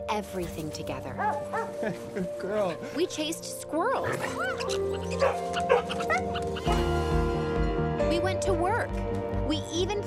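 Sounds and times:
dog barking and yipping: 1.2s - 1.8s, 4.0s - 6.6s.

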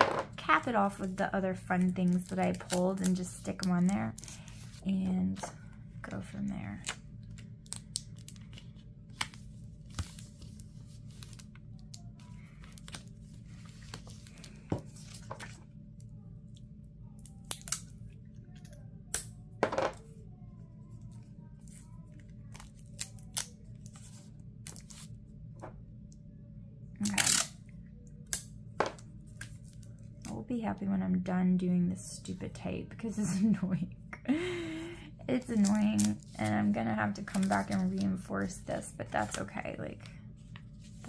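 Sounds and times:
low hum: 0.0s - 41.0s
paper and plastic sheet rustling: 35.5s - 38.3s.

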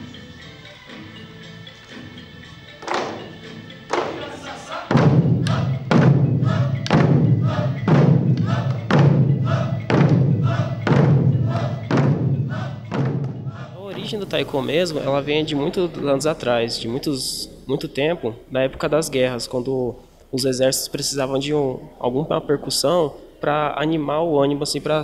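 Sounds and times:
taiko drums booming: 4.9s - 14.2s.

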